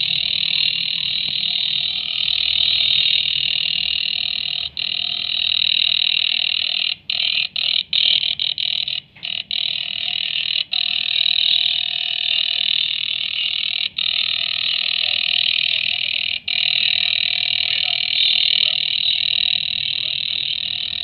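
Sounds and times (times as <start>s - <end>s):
chopping shortwave radio drone: 0.0s - 21.0s.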